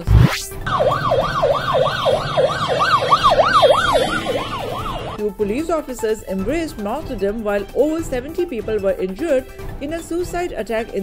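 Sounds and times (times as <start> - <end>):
siren yelping: 0.1 - 5.2.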